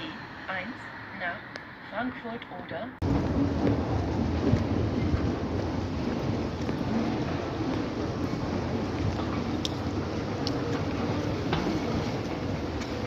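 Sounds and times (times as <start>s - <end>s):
low rumbling: 0.0s - 13.0s
faint clicks: 9.0s - 11.6s.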